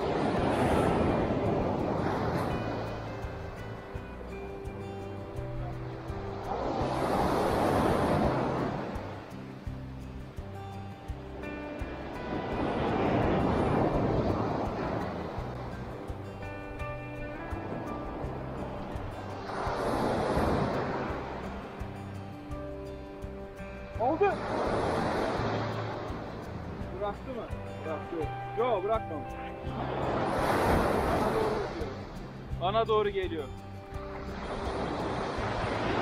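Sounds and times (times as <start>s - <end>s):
background music: 0.0s - 36.0s
waves on pebble beach: 0.0s - 36.0s.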